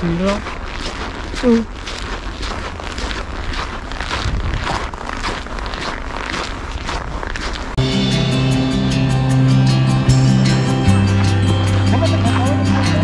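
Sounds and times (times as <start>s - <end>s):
wind rumbling on microphone: 0.0s - 7.8s
footsteps crunching on snow: 0.0s - 8.1s, 10.4s - 13.0s
music: 7.8s - 13.0s.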